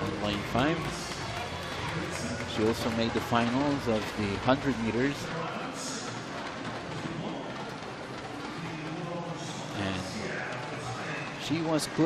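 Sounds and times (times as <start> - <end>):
indoor pool arena noise: 0.0 - 12.0.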